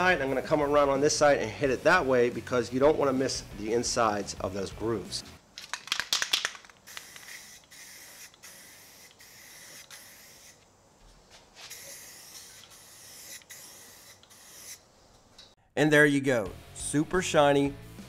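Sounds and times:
aerosol spray can hissing: 5.8 - 10.7, 11.6 - 14.8.

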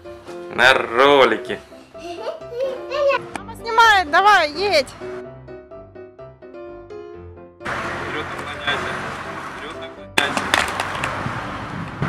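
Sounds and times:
skater falling on asphalt: 10.2 - 11.2
skate wheels rolling: 10.2 - 12.0
skates scraping on pavement: 10.2 - 12.0.

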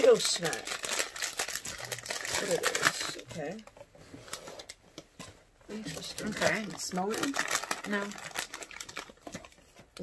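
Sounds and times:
plastic snack bag crinkling: 0.0 - 3.6, 5.8 - 10.0.

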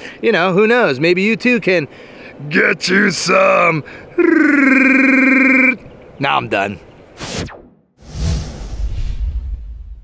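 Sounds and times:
creature cry: 3.2 - 5.8.

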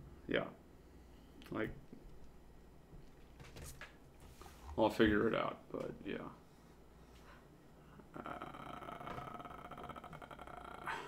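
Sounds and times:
breathy sound: 7.1 - 11.0.

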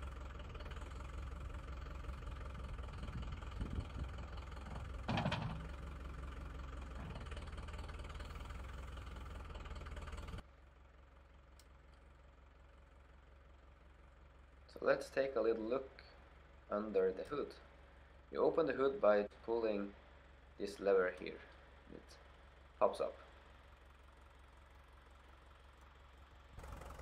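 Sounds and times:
tractor diesel engine idling: 0.0 - 27.0.

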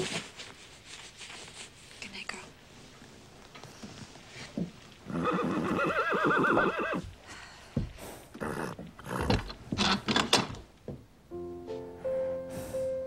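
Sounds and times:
horse whinnying: 5.1 - 7.1.

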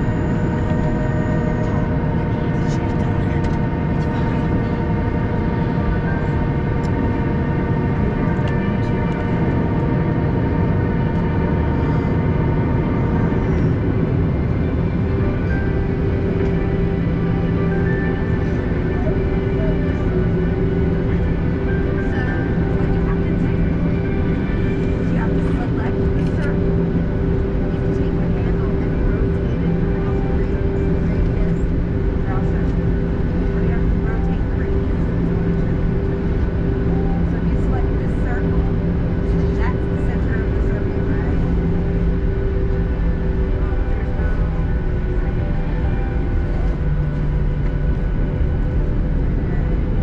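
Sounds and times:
airplane cabin engine hum: 0.0 - 50.0
faint passenger chatter: 0.0 - 50.0.

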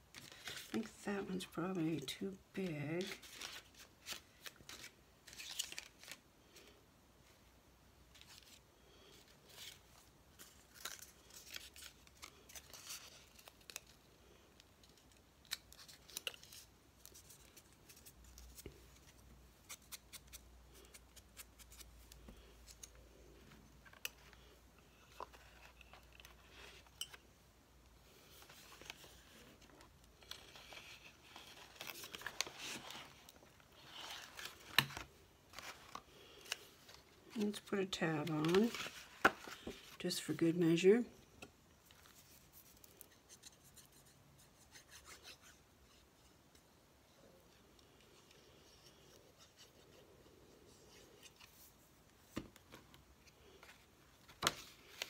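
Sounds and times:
paper rustling and scratching: 3.0 - 6.2, 28.2 - 40.0.

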